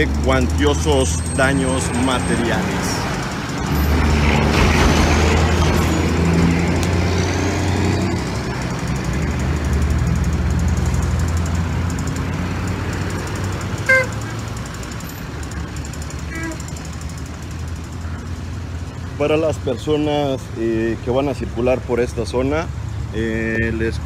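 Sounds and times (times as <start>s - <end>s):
vehicle engines idling: 0.0s - 24.0s.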